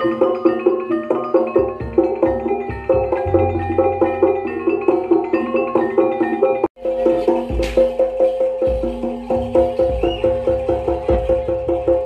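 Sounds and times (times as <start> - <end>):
metal percussion repeating pattern: 0.0 - 12.0
deep drum beat: 1.6 - 5.6, 6.9 - 12.0.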